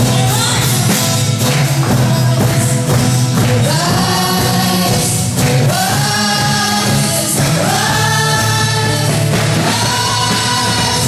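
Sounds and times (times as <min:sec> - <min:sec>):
group of voices singing: 0:00.0 - 0:11.0
keyboard guitars and drums band: 0:00.0 - 0:11.0.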